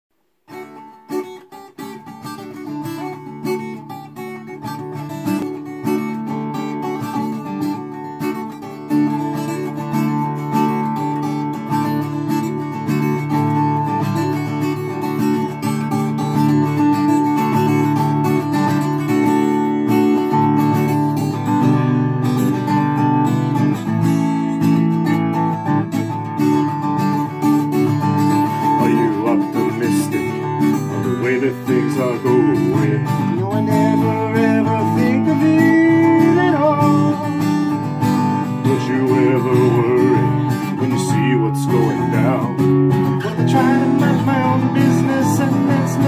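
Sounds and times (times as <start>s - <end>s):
solo acoustic guitar picking: 0.4s - 46.0s.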